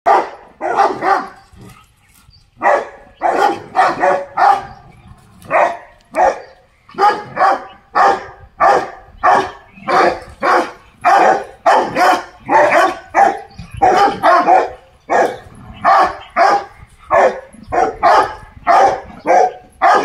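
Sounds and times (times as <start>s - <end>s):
dog barking: 0.1s - 1.4s, 2.6s - 4.8s, 5.5s - 20.0s.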